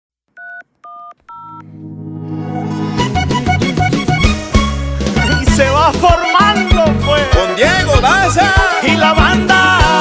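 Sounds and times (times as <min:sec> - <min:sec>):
telephone keypad tones: 0:00.4 - 0:01.6
music: 0:01.6 - 0:10.0.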